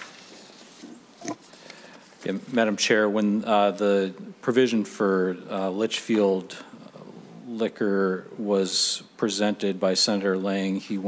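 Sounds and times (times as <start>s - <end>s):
faint small noises: 0.0s - 11.0s.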